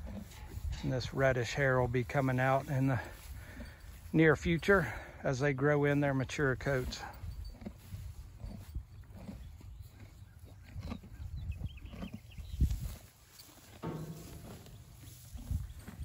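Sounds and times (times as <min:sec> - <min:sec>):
horses chewing: 0:00.0 - 0:16.0
thump: 0:13.8 - 0:14.8
low rumble: 0:13.8 - 0:16.0.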